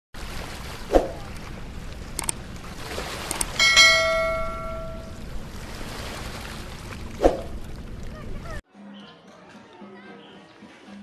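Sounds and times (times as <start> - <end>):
river water rushing: 0.2 - 8.0
notification bell chime: 3.6 - 5.2.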